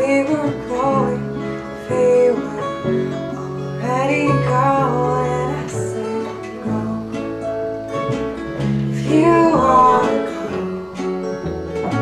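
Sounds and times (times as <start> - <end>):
acoustic guitar: 0.0 - 12.0
bass: 0.0 - 12.0
keyboard: 0.0 - 12.0.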